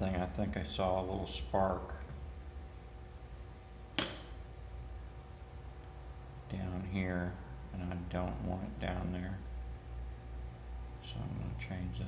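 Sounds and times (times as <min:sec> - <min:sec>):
faint electrical hum: 0:00.0 - 0:12.0
sharp click: 0:04.0 - 0:04.4.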